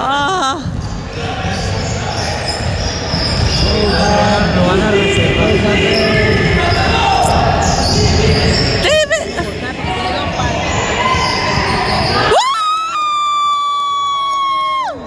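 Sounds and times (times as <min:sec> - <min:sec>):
murmur of spectators: 0:00.0 - 0:15.0
sneakers squeaking: 0:00.0 - 0:15.0.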